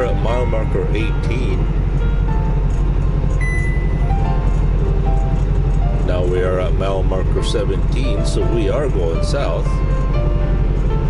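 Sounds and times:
music with sparse held notes: 0.0 - 11.0
road noise: 0.0 - 11.0
truck engine drone: 0.0 - 11.0.

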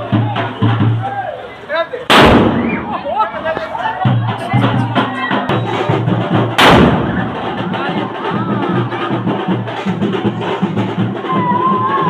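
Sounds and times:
drum-led band music: 0.0 - 12.0
firecracker bang: 2.1 - 3.2, 6.4 - 7.5.

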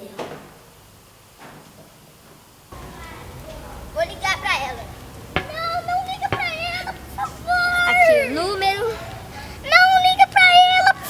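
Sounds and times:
child's wordless vocal: 2.8 - 11.0.

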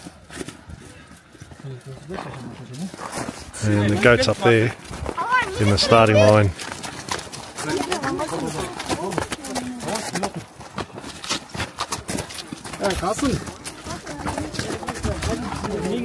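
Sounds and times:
people talking: 3.6 - 6.5, 12.8 - 16.0.

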